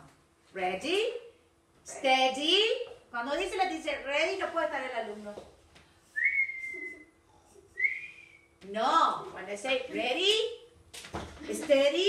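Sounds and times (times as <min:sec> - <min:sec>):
person whistling sliding notes: 0:06.1 - 0:08.5.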